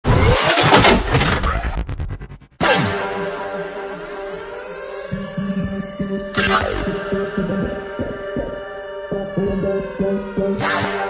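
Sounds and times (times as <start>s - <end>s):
car engine revving and stuttering: 0.0s - 7.2s.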